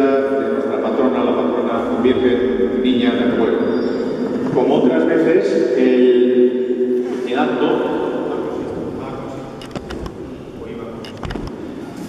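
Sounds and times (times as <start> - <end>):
voices murmuring: 0.0 - 11.8.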